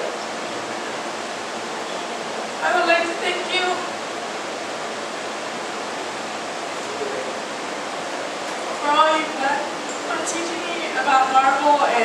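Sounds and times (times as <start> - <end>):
steady recording hiss: 0.0 - 12.0.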